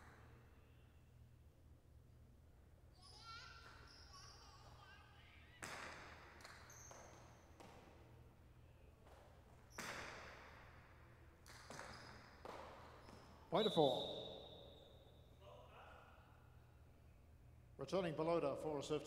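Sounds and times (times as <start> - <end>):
ball cracking against walls: 5.6 - 8.1, 9.0 - 13.4.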